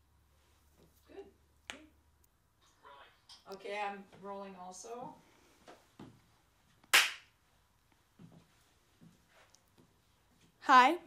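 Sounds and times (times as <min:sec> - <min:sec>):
sharp hand clap: 0:06.9 - 0:07.3.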